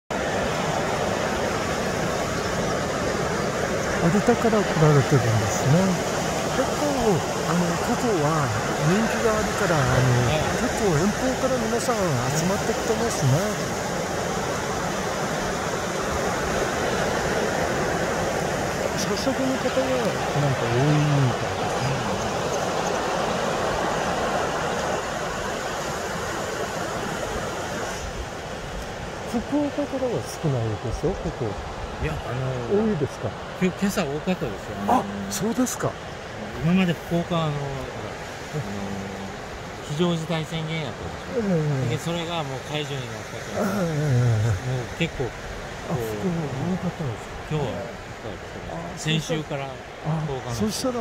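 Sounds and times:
ocean waves breaking: 0:00.1 - 0:51.0.

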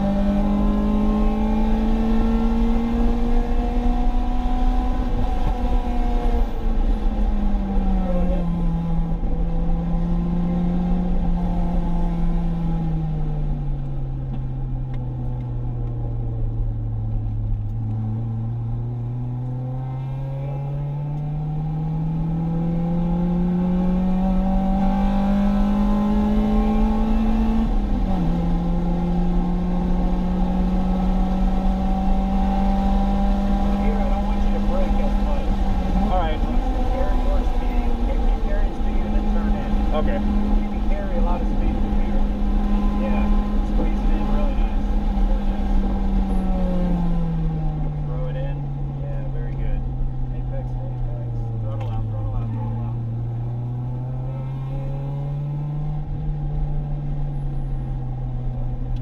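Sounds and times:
car engine revving in cabin: 0:00.0 - 0:59.0.

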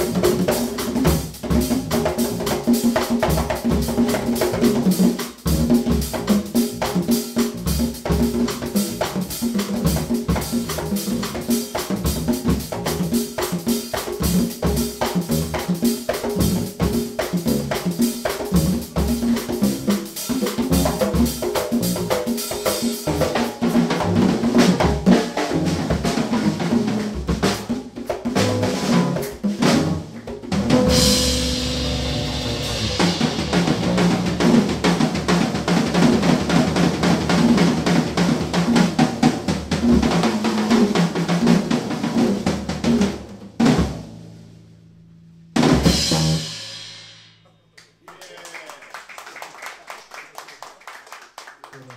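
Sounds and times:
fast drumming and rolls: 0:00.0 - 0:44.1, 0:45.6 - 0:46.5
jazz trio playing: 0:00.0 - 0:47.4
electric bass: 0:14.2 - 0:18.0, 0:28.4 - 0:35.2
cymbal crash: 0:30.9 - 0:34.3.

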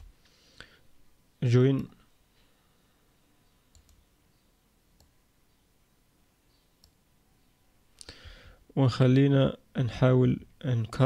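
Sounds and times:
computer mouse clicks: 0:03.7 - 0:04.0, 0:05.0 - 0:05.2.

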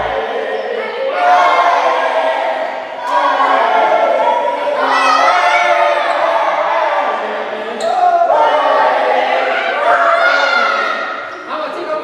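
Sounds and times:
group of voices singing: 0:00.0 - 0:11.3.

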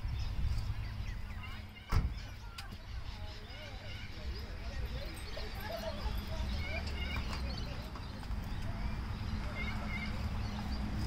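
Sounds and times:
faint distant voices: 0:00.1 - 0:11.0.

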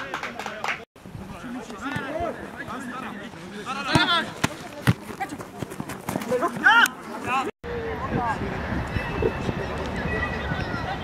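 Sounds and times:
players calling: 0:01.4 - 0:07.5
football kicks on grass: 0:03.9 - 0:05.2.

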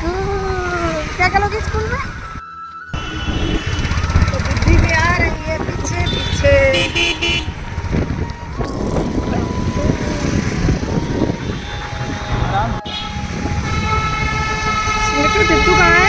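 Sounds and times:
road traffic with motorbikes: 0:00.0 - 0:16.0
short horn beep: 0:03.0 - 0:04.1
long steady vehicle horn: 0:03.0 - 0:04.2, 0:06.0 - 0:07.6, 0:11.2 - 0:16.0.

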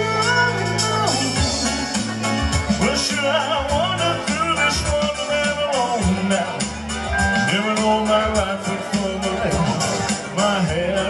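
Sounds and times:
man singing into microphone: 0:00.0 - 0:11.0
recorded backing music with beat: 0:00.0 - 0:11.0.

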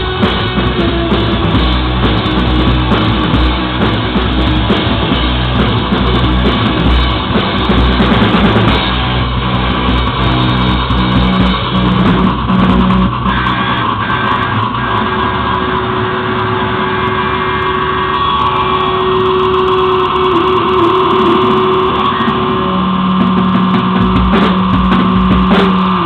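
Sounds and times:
cymbal crashes: 0:00.0 - 0:26.0
drums: 0:00.0 - 0:26.0
electric guitar droning: 0:00.0 - 0:26.0.

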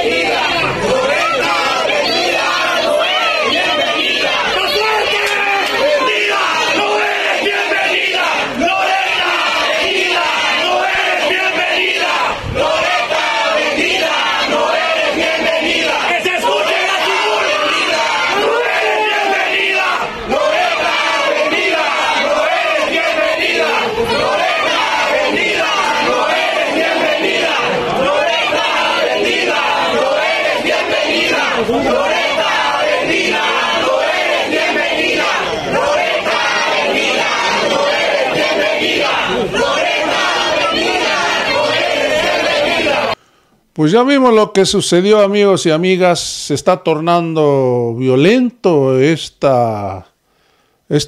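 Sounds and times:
crowd of protesters shouting: 0:00.0 - 0:43.2.

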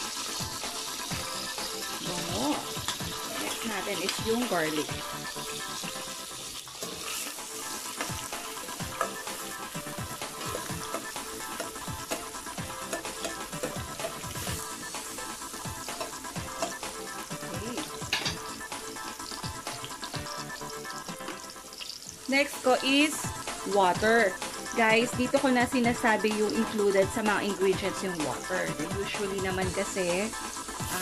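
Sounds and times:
onion and garlic sizzling in oil: 0:00.0 - 0:31.0
metal spoon stirring in pot: 0:02.8 - 0:14.7.

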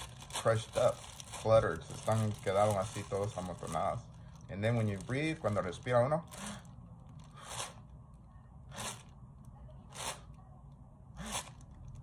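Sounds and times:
plastic bag crinkling: 0:00.0 - 0:07.4.

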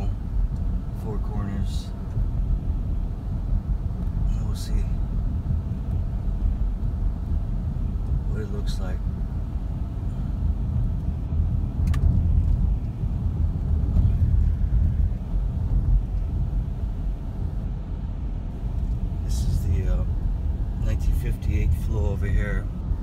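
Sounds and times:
car tyres and engine rumble: 0:00.0 - 0:23.0
click: 0:11.8 - 0:12.1.

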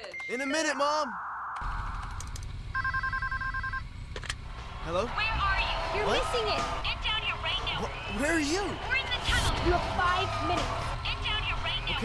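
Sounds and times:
telephone ringing electronically: 0:02.7 - 0:03.9.

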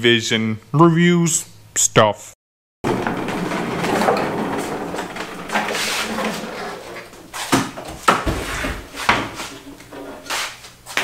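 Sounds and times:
loud scrape: 0:02.8 - 0:07.6
load rattling: 0:02.8 - 0:08.0
cart casters rumbling on concrete: 0:02.8 - 0:10.3.

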